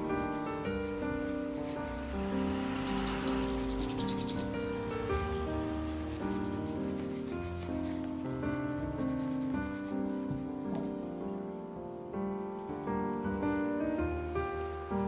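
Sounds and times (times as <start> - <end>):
cloth rubbing on leather shoe: 0.0 - 11.0
piano background music: 0.0 - 15.0.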